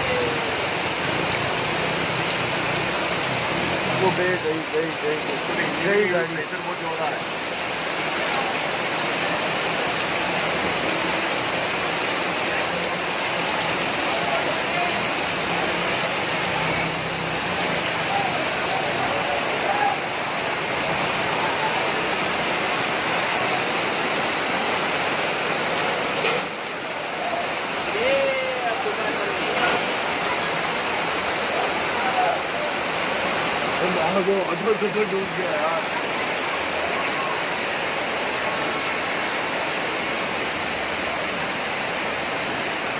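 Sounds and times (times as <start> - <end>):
floodwater rushing: 0.0 - 42.9
faint voices of people: 35.6 - 37.9.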